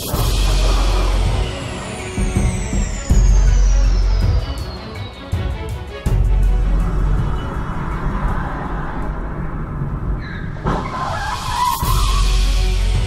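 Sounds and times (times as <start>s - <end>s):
music with heavy bass: 0.0s - 9.5s, 11.4s - 13.0s
car tyres screeching on asphalt: 6.8s - 12.4s.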